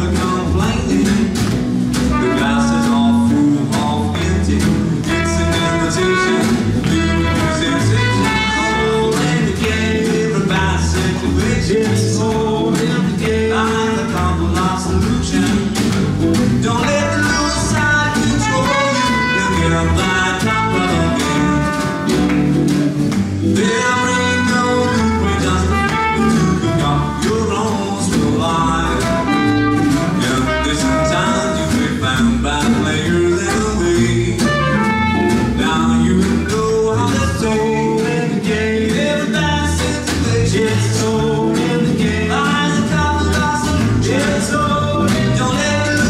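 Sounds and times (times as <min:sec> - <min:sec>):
acoustic guitars strumming: 0:00.0 - 0:46.0
walking double bass: 0:00.0 - 0:46.0
snare drum: 0:00.1 - 0:37.4
trumpet melody: 0:02.0 - 0:03.5, 0:05.0 - 0:09.5, 0:16.9 - 0:22.6, 0:23.6 - 0:27.6, 0:28.8 - 0:32.2, 0:33.4 - 0:35.9.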